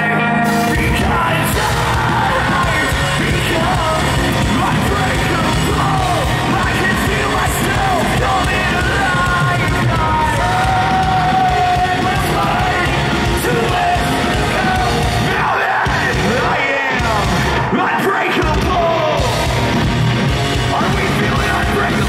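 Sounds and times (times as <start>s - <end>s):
hard rock band playing live: 0.0s - 22.0s
vocalist singing: 0.0s - 22.0s.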